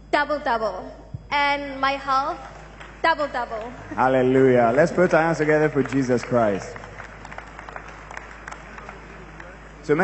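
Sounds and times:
crowd applauding: 2.5 - 10.0.

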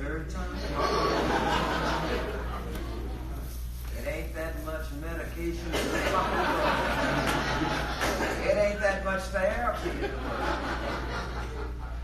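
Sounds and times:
steady low hum: 0.0 - 12.0
audience laughing: 0.6 - 3.4, 5.7 - 8.6, 9.8 - 12.0.

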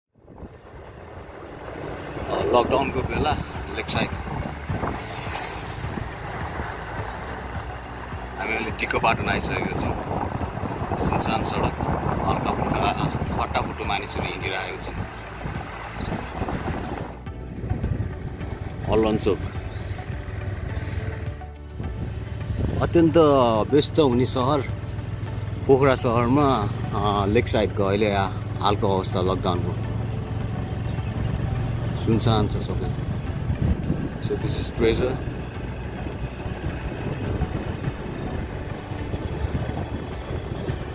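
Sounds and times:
moving vehicle: 0.1 - 40.9
road noise: 0.1 - 40.9
wind on microphone: 0.2 - 7.8, 9.0 - 21.2, 32.8 - 34.4, 35.8 - 40.9.

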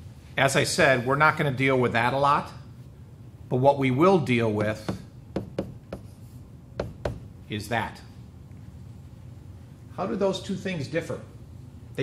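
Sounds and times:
stylus tapping on a tablet: 4.6 - 6.1, 6.8 - 7.3.

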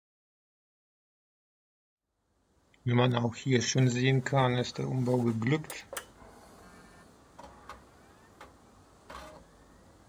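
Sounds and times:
computer fans whirring: 3.5 - 10.0.

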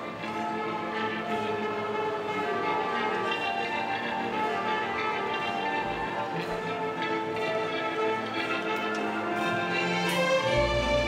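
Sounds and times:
orchestra playing: 0.0 - 11.0.

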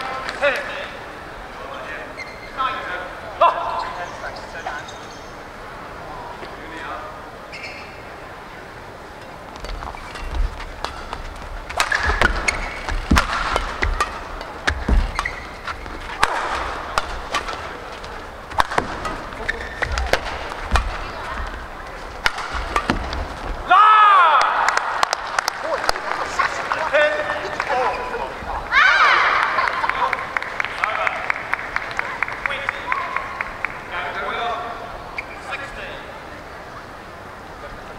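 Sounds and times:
shoes squeaking on court: 1.8 - 2.8, 3.6 - 5.5, 7.4 - 8.2, 9.2 - 23.7, 27.7 - 28.6, 35.1 - 35.6
rackets hitting shuttlecock: 10.2 - 23.6.

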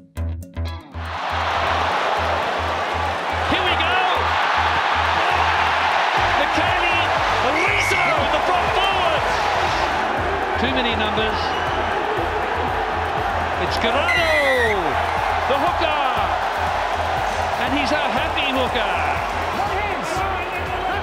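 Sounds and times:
stadium crowd cheering: 1.0 - 21.0
people shouting: 14.0 - 15.1.

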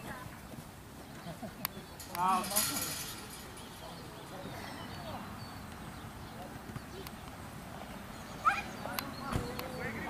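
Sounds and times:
distant voices: 0.0 - 10.0
outdoor background noise: 0.0 - 10.0.

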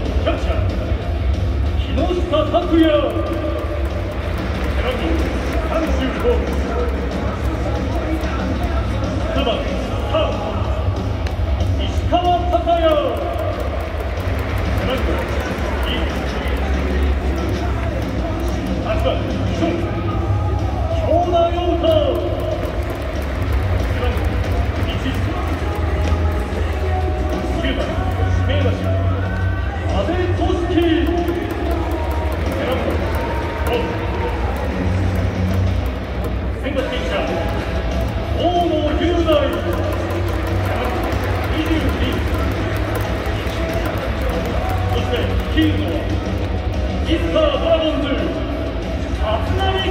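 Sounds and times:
background music: 0.0 - 49.9.

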